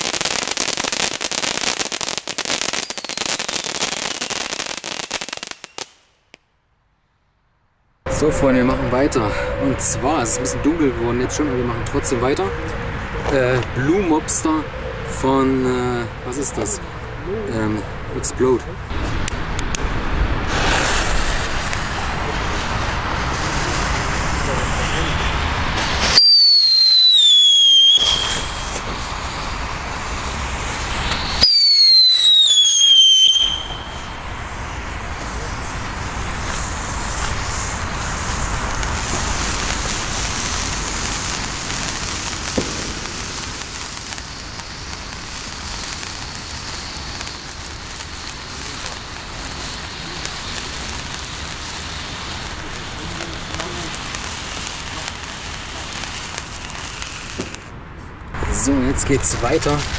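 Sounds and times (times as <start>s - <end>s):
hissing spray of sparks: 0.0s - 6.1s, 18.9s - 57.7s, 58.5s - 59.9s
firework whistle falling in pitch: 26.0s - 29.7s, 30.9s - 34.2s.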